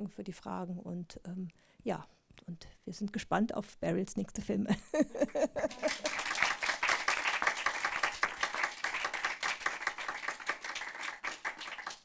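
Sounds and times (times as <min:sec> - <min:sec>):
audience applauding: 0:05.7 - 0:12.0.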